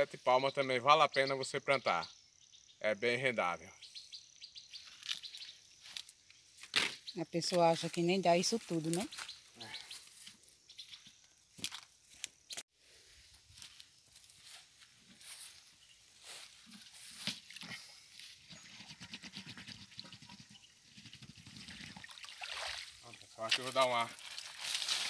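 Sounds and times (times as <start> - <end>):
water gurgling into watering can: 21.5 - 23.3.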